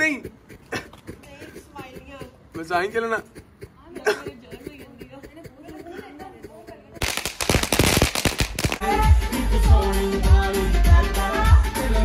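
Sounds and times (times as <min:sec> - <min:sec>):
firework crackling: 0:07.0 - 0:09.1
music: 0:08.8 - 0:12.0.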